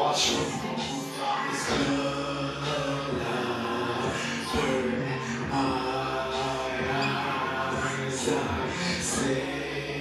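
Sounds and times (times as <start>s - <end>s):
man singing into microphone: 0.0s - 10.0s
music: 0.0s - 10.0s.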